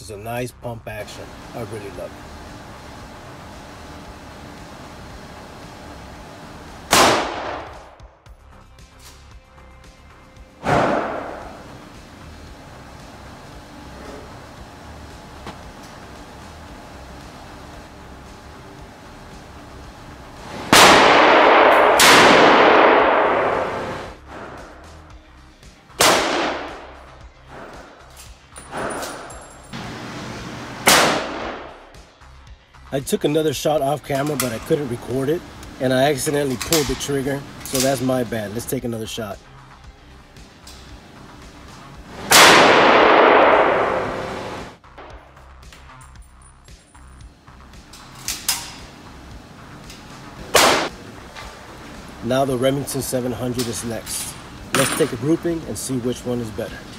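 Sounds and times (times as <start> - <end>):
gunshots with echoing tail: 6.9 - 8.2, 10.6 - 11.7, 20.6 - 24.7, 26.0 - 27.0, 30.8 - 32.0, 42.2 - 45.3, 50.5 - 51.0.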